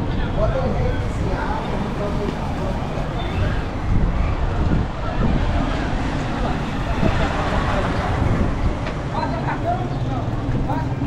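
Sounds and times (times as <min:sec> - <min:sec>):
faint voices of people: 0:00.0 - 0:11.0
vehicle noise: 0:00.0 - 0:11.0
wind on microphone: 0:00.0 - 0:11.0.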